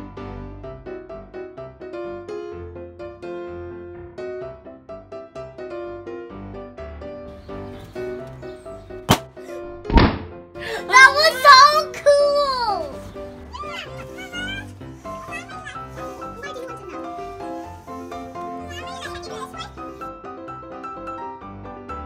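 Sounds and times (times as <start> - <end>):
light background music: 0.0 - 22.0
balloon bursting with a pop: 9.0 - 10.4
loud thump: 9.1 - 10.4.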